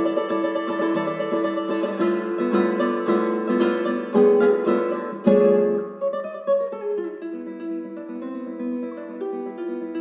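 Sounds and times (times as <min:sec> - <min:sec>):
classical guitar playing: 0:00.0 - 0:10.0.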